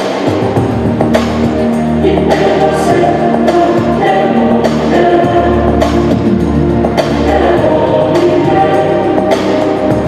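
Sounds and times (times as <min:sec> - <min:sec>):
singing over a steady beat: 0:00.0 - 0:10.0.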